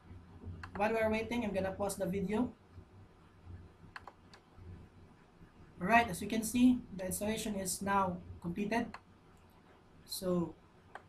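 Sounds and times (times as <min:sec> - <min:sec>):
low steady hum: 0:00.0 - 0:11.0
faint computer clicks: 0:00.5 - 0:00.9, 0:03.9 - 0:04.5.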